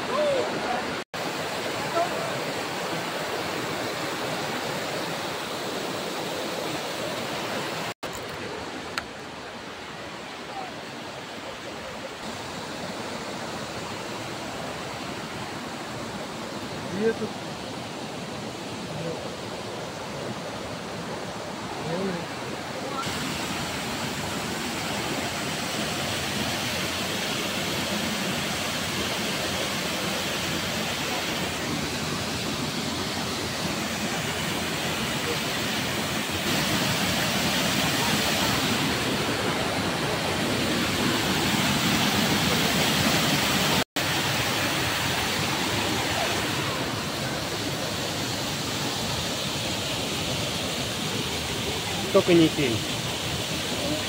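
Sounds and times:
rushing river water: 0:00.0 - 0:54.0
small waterfall: 0:00.0 - 0:54.0.

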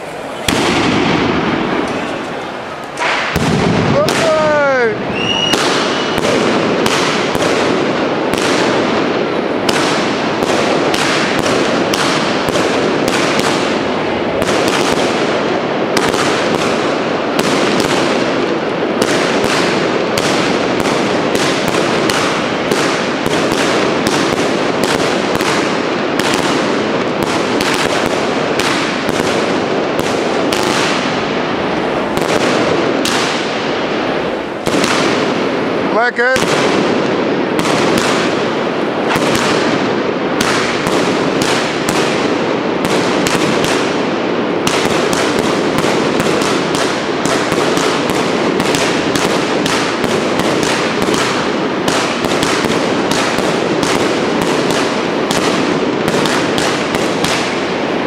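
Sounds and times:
fireworks shell bursts and bangs: 0:00.0 - 0:34.0, 0:34.6 - 0:57.8
falling firework whistle: 0:05.0 - 0:06.5.

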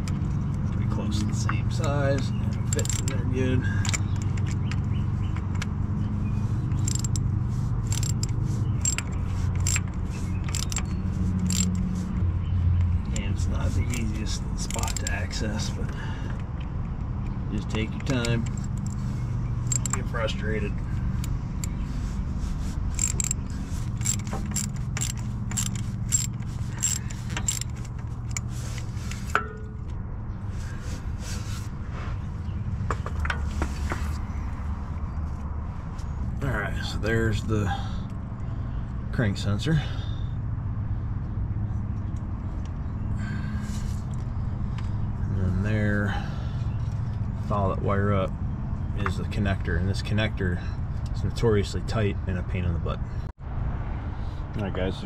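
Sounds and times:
ratchet clicking: 0:01.7 - 0:03.2, 0:03.8 - 0:05.7, 0:06.6 - 0:12.1, 0:12.8 - 0:15.4, 0:17.7 - 0:20.2, 0:20.9 - 0:22.0, 0:22.8 - 0:29.4
metal tool clatter: 0:01.7 - 0:04.8, 0:06.7 - 0:12.0, 0:13.1 - 0:15.8, 0:17.7 - 0:20.2, 0:22.9 - 0:29.9.

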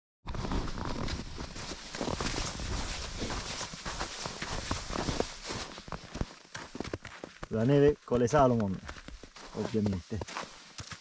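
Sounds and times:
footsteps in snow: 0:00.3 - 0:11.0.

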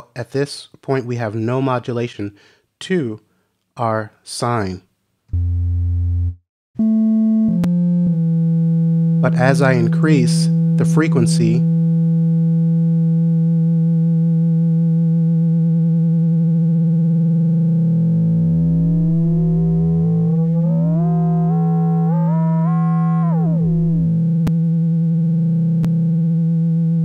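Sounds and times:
synthesizer note with gliding tones: 0:16.3 - 0:24.5.

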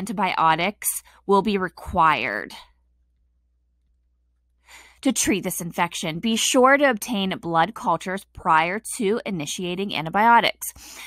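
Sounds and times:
person speaking: 0:00.0 - 0:02.6, 0:05.0 - 0:10.8
person breathing in: 0:04.6 - 0:05.0.

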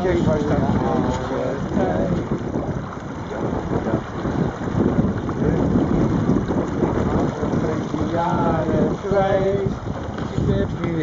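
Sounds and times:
water washing along hull: 0:00.0 - 0:11.0
wind buffeting microphone: 0:00.0 - 0:11.0.

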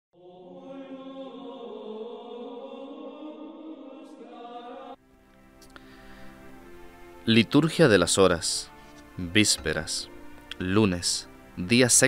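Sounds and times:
chanted singing on held notes: 0:00.2 - 0:05.2
quiet steady music: 0:00.2 - 0:12.0.

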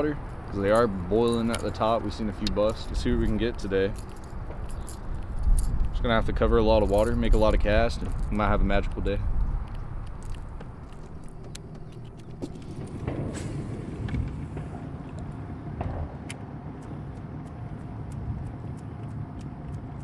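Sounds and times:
boat engine rumble: 0:00.0 - 0:20.0
light ticks: 0:16.2 - 0:20.0.

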